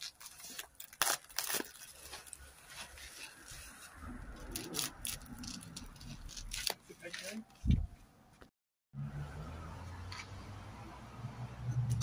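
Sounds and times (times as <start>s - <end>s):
paper and tape tearing: 0.0s - 7.4s.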